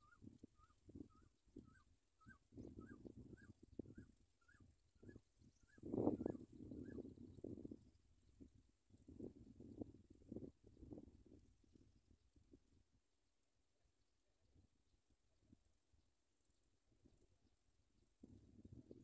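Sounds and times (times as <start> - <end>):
faint bird chirps: 0.0 - 8.0.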